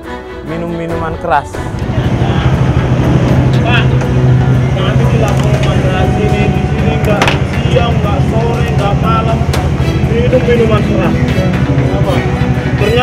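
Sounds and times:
voices: 0.5 - 13.0
motorcycle engine idling: 1.7 - 13.0.

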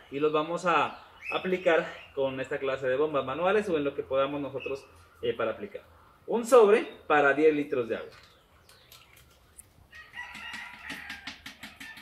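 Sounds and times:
rooster crowing: 9.9 - 12.0.

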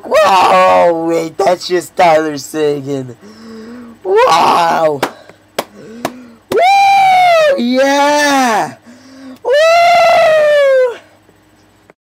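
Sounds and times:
man yelling yeah: 0.0 - 2.2, 4.0 - 5.1, 6.5 - 8.8, 9.5 - 11.1.

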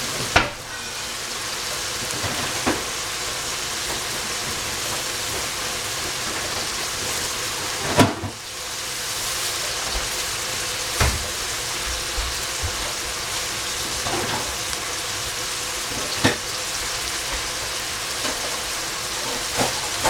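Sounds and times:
vegetables sizzling in oil: 0.0 - 20.0.

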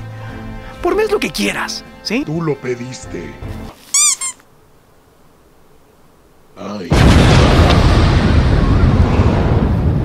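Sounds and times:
rubber squeak toy squeaking: 3.8 - 4.4.

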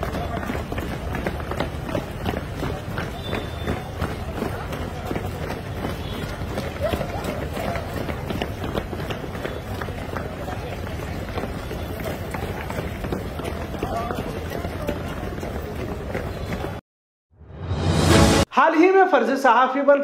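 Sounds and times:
feet pounding on pavement: 0.0 - 16.8.

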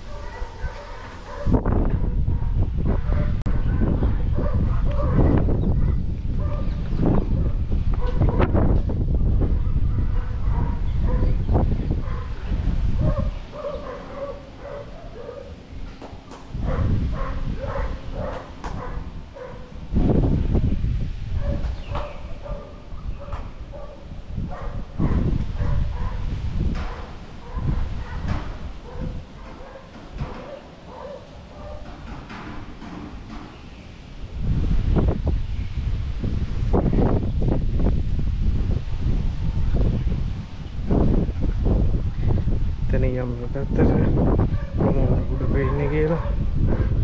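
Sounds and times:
wind buffeting microphone: 0.0 - 47.0.

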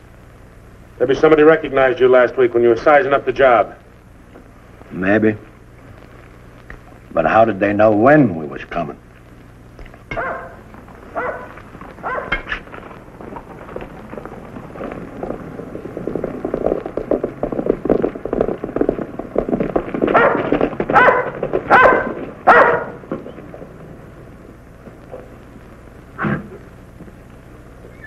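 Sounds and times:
dog barking: 10.1 - 12.5, 20.1 - 23.0
horses galloping on dirt: 10.1 - 25.0.

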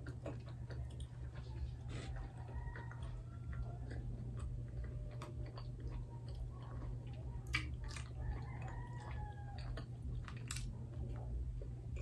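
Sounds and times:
close-up chewing: 0.0 - 12.0
steady low hum: 0.0 - 12.0.

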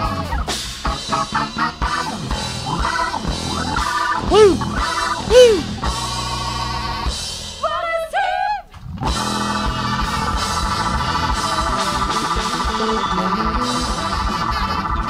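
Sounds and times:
electric bass: 0.0 - 7.6, 8.8 - 15.0
saxophone: 4.3 - 4.6, 5.3 - 5.8, 12.6 - 15.0
electric guitar: 8.8 - 15.0
drum kit: 9.1 - 15.0.

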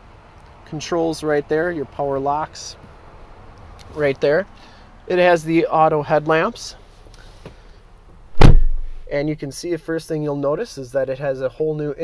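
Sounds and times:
car door shutting thud: 8.3 - 9.1.

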